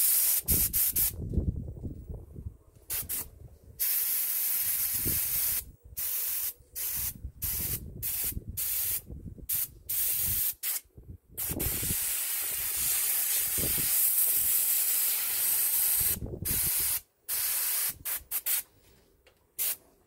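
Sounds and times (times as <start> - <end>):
airbrush spraying paint: 0.0 - 1.2, 2.9 - 10.8, 11.4 - 18.7, 19.6 - 19.8.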